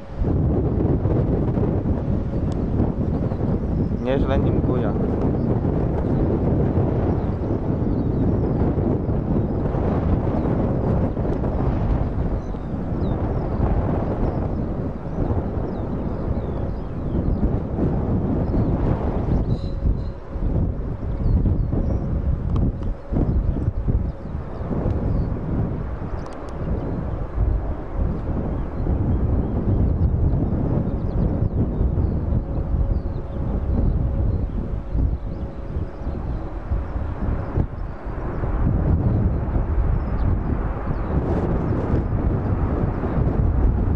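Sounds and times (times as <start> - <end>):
jet engines landing: 0.0 - 43.9
wind rumble on microphone: 0.0 - 43.9.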